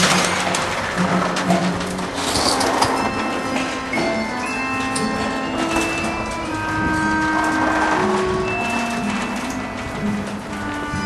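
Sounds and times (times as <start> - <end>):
metal roller shutter rattling: 0.0 - 11.0.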